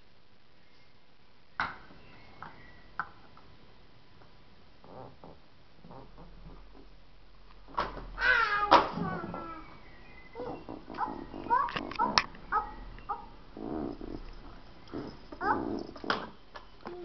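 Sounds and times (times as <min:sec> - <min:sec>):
child babbling: 0:08.2 - 0:09.7, 0:10.4 - 0:12.7
child squealing: 0:08.2 - 0:09.7.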